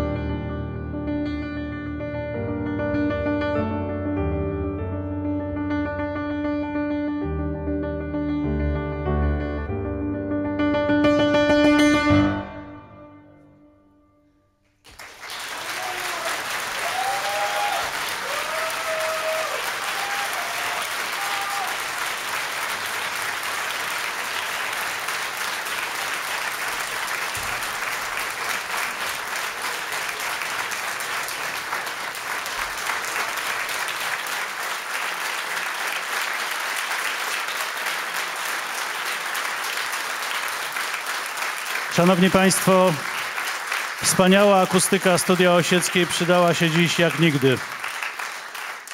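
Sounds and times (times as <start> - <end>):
studio audience applauding: 14.8 - 48.9.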